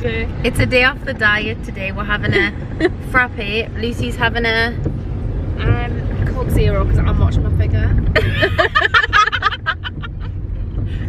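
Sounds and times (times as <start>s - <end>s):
low hum inside a car: 0.0s - 11.0s
women laughing hard: 8.2s - 10.4s.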